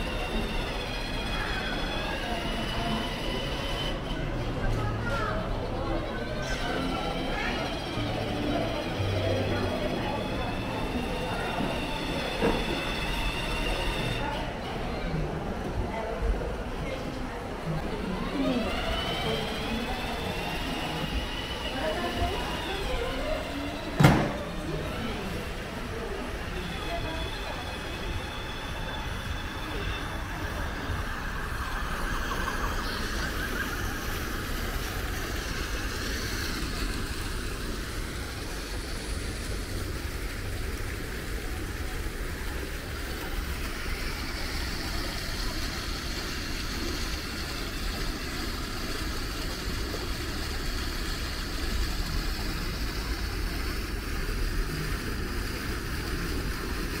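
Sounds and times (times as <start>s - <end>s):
fountain water splashing: 17.7s - 57.0s.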